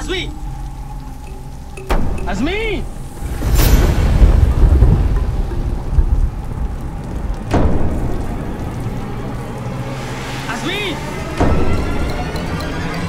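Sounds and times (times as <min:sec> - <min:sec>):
steady hiss: 0:00.0 - 0:12.6.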